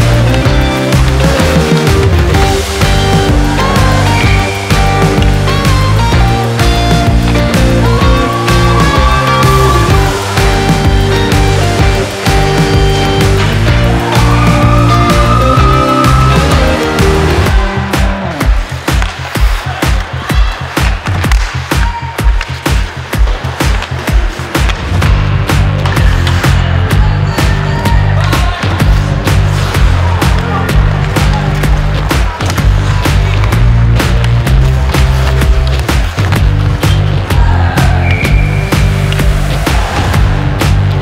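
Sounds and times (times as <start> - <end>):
heavy bass line: 0.0 - 20.6, 24.2 - 41.0
music with steady beat: 0.0 - 41.0.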